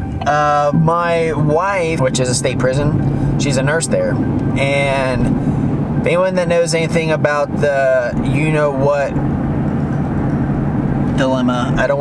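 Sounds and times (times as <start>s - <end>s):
vehicle road and engine noise: 0.0s - 12.0s.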